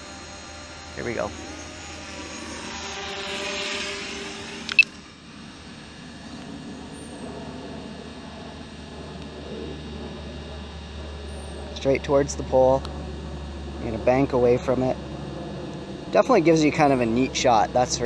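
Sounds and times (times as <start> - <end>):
drone propellers buzzing: 0.0 - 18.0
sharp click: 4.6 - 4.9.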